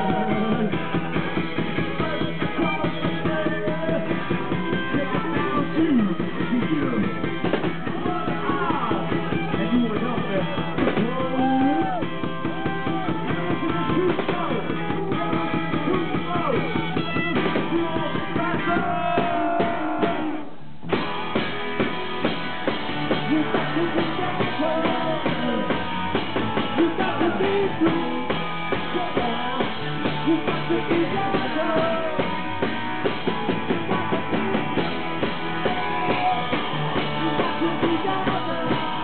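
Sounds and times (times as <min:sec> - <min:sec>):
drum kit beat: 0:00.0 - 0:39.0
electric guitar: 0:00.0 - 0:39.0.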